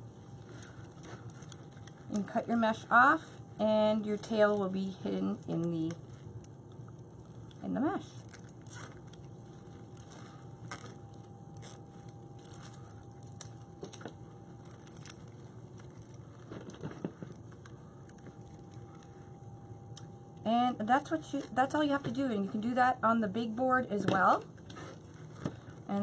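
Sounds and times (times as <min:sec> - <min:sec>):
mesh rustling: 0:08.2 - 0:20.0.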